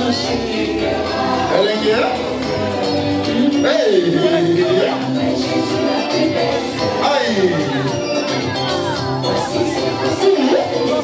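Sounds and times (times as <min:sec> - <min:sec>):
group singing with accompaniment: 0:00.0 - 0:11.0.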